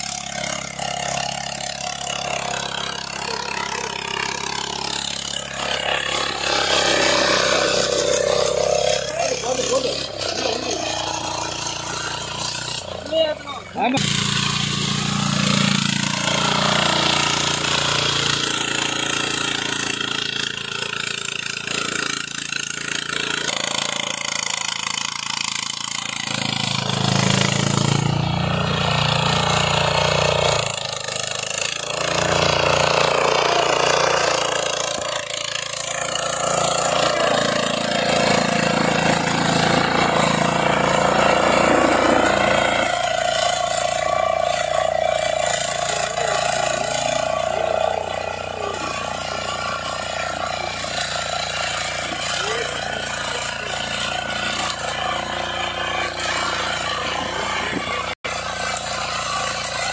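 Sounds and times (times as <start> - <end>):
power weeder engine running: 0.0 - 59.9.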